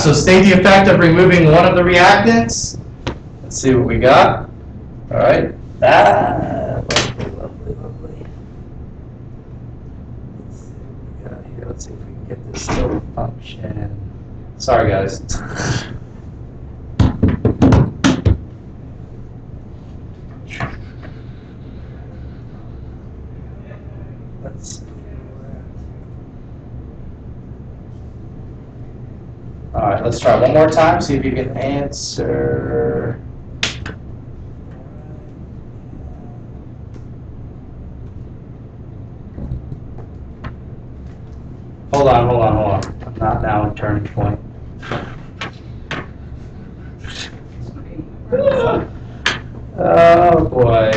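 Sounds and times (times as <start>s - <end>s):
steady low hum: 0.0s - 50.9s
sharp knocks: 17.0s - 18.5s.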